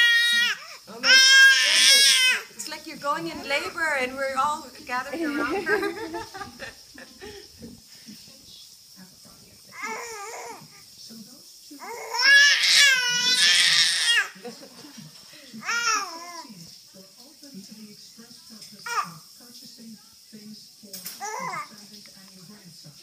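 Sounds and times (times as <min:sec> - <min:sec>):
baby crying babble: 0:00.0 - 0:02.5, 0:09.7 - 0:10.7, 0:11.8 - 0:14.4, 0:15.6 - 0:16.5, 0:18.8 - 0:19.2, 0:21.2 - 0:21.7.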